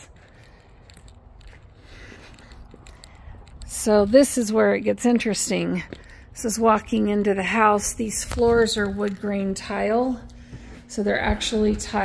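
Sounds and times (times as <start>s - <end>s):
low rumble of wind: 0.0s - 12.0s.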